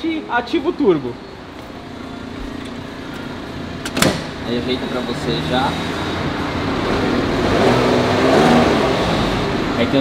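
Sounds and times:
car engine idling: 1.4 - 7.3.

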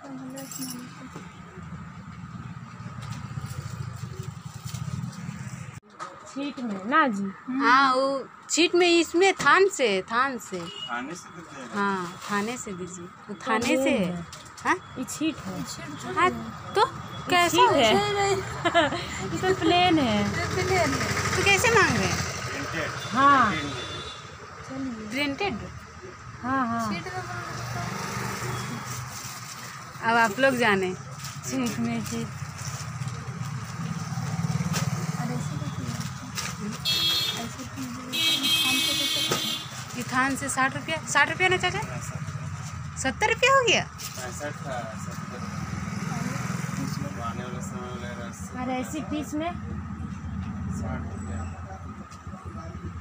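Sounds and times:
small engine running: 19.0 - 23.1.

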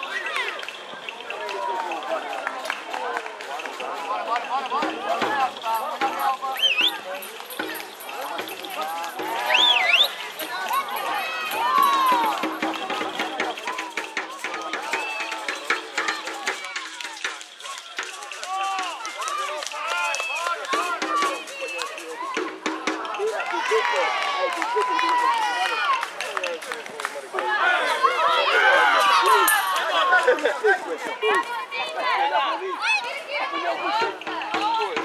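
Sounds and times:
crowd shouting: 0.0 - 26.4, 27.2 - 35.0.

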